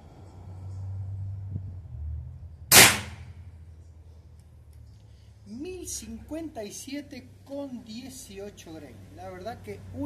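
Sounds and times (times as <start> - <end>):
echo of air rifle shot: 2.7 - 3.3.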